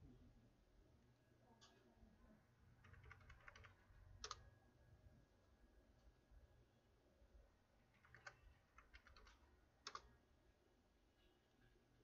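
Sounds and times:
typing on computer keyboard: 2.8 - 4.4, 7.9 - 10.1.

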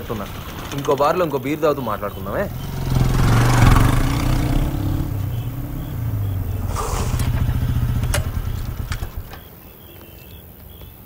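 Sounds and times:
motorcycle engine running: 0.0 - 9.4.

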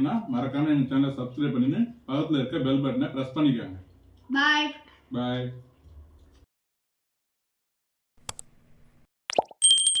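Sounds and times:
bright bell ringing: 9.6 - 10.0.

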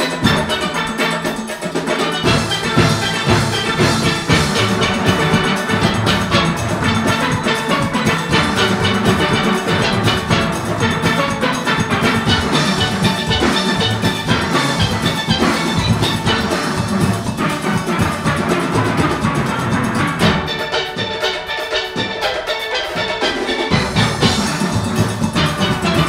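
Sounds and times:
drum kit and percussion: 0.0 - 26.0
steel pans playing melody: 0.0 - 26.0.

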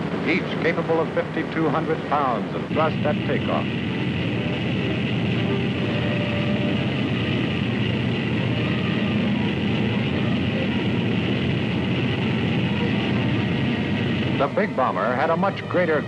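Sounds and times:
bomber engines droning: 0.0 - 16.0.

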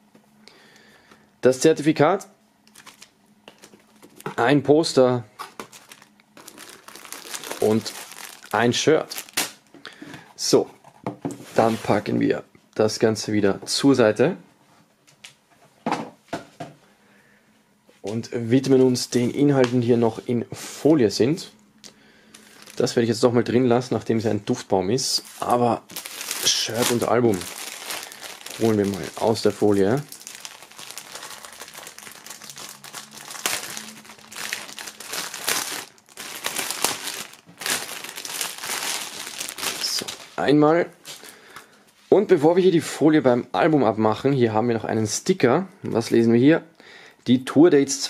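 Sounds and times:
plastic film crinkling: 2.7 - 4.3, 5.4 - 9.7, 22.3 - 23.3, 25.1 - 41.3.

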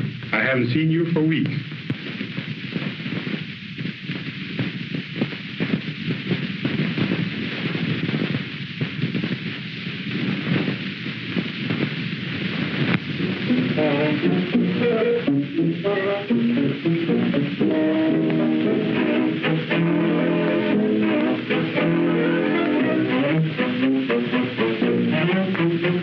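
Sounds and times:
film soundtrack hiss and crackle: 0.0 - 26.0.

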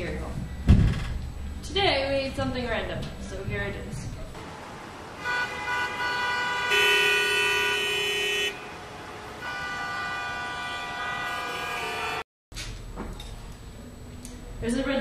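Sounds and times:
car horns honking: 4.4 - 12.2.

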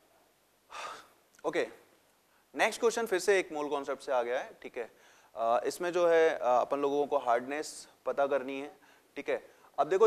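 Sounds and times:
man's sharp intake of breath: 0.7 - 1.2, 5.0 - 5.4, 8.8 - 9.8
man speaking: 1.4 - 1.9, 2.5 - 10.0.

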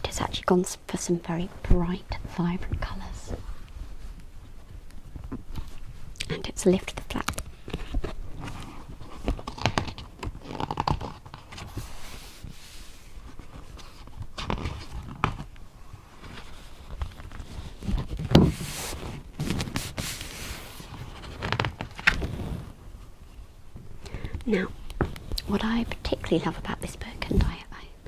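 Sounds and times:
book pages turning: 6.7 - 22.8.

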